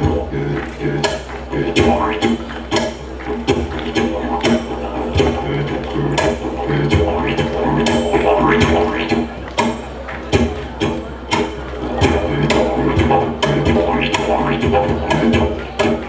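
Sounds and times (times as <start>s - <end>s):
didgeridoo drone: 0.0s - 16.0s.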